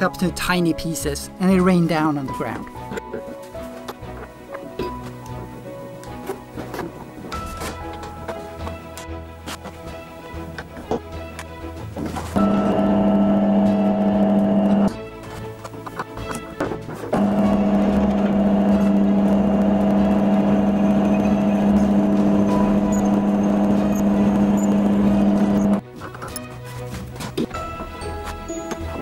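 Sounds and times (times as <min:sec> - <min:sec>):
drill press motor humming: 0:12.4 - 0:15.0, 0:17.1 - 0:25.8.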